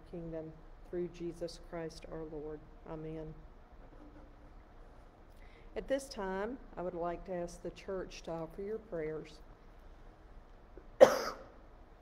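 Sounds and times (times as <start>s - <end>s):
woman coughing: 11.0s - 11.6s.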